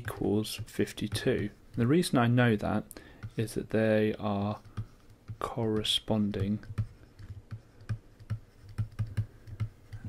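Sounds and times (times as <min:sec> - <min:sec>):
stylus clicking on tablet: 0:04.2 - 0:10.0.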